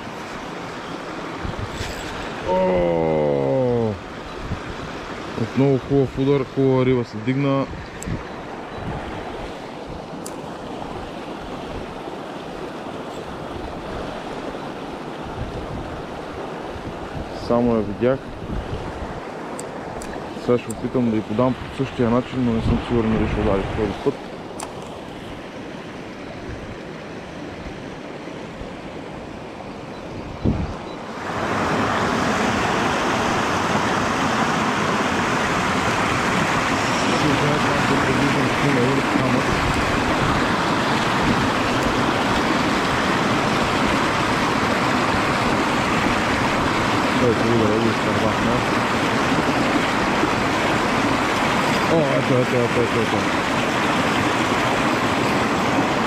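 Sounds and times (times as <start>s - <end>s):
whitewater rushing: 0.0s - 29.9s, 31.0s - 56.0s
river running over stones: 0.0s - 30.2s, 31.0s - 56.0s.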